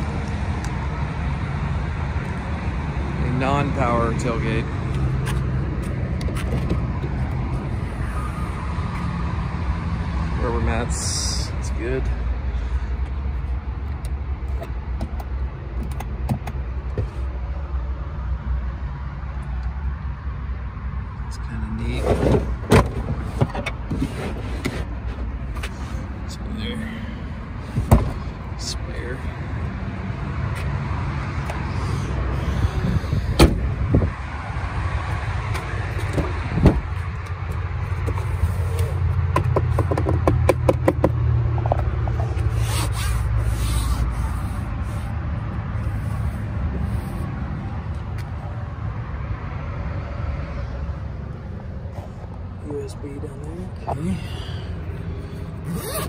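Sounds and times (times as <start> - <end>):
sharp knocks and clicks: 15.0 - 17.1, 39.3 - 42.2
rubber mats shifting: 22.0 - 26.0.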